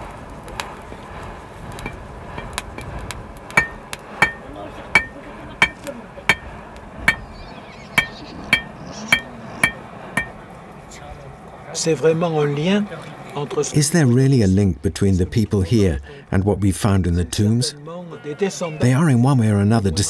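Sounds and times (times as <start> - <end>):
hammer striking anvil: 3.6 - 4.4, 5.0 - 6.5, 7.1 - 7.3, 8.0 - 10.4.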